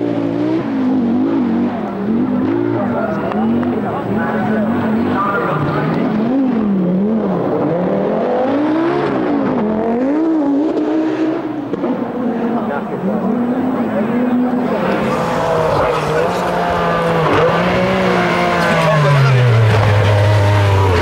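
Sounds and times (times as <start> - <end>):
rally car engine revving: 0.0 - 21.0.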